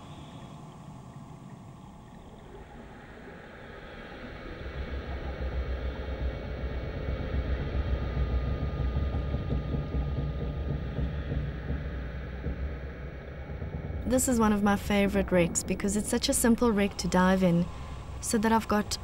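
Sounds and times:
low underwater rumble: 0.0s - 19.0s.

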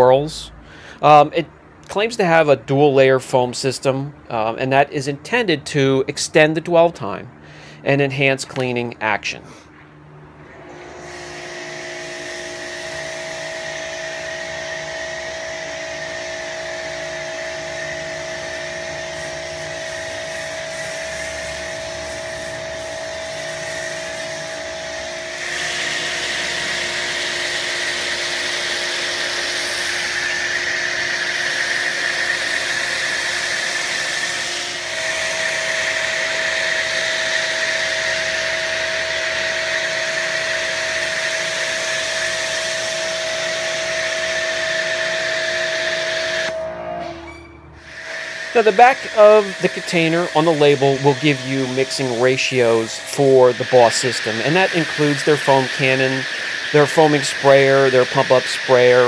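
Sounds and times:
pressure washer whining: 10.2s - 59.0s
foam spray hissing: 18.5s - 24.6s, 47.8s - 59.0s.

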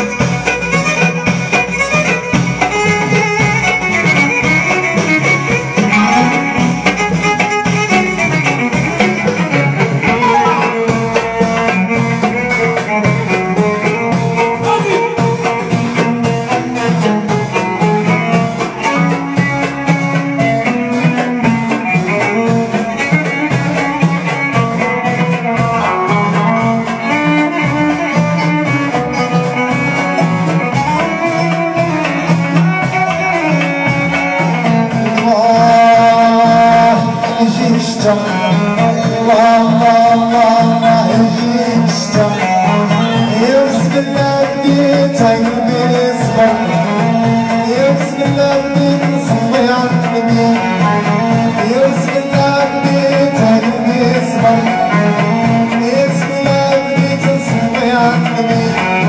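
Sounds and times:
amplified violin: 0.0s - 59.0s
drums keeping steady beat: 0.0s - 59.0s
folk band playing: 0.0s - 59.0s.

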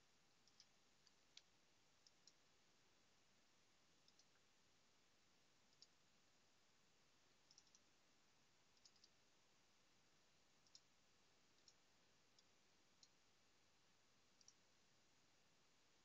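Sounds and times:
faint mouse clicks: 0.4s - 2.4s, 4.0s - 4.5s, 5.7s - 6.0s, 7.4s - 7.9s, 8.8s - 9.2s, 10.6s - 10.9s, 11.5s - 13.2s, 14.4s - 14.7s.

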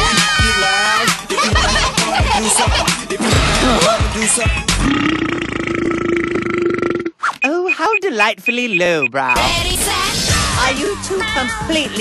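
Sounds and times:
upbeat music: 0.0s - 4.9s, 7.4s - 9.8s
cartoon character burping: 4.8s - 7.3s.

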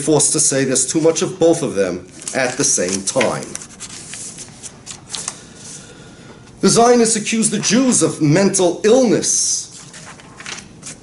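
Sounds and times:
paper rustling and flicking: 2.1s - 5.5s, 9.7s - 11.0s.

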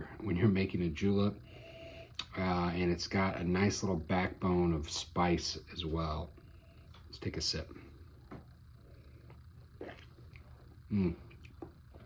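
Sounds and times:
low steady hum: 0.0s - 12.0s
mouth sounds sipping from a glass: 9.8s - 10.4s.

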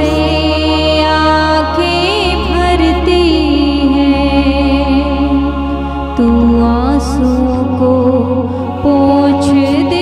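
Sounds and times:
sustained instrumental chords: 0.0s - 10.0s.

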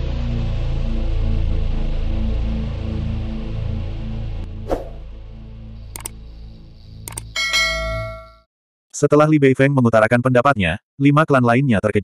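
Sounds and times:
click sound effects: 5.9s - 6.2s, 7.0s - 8.4s
bright bell ding: 7.4s - 8.5s.

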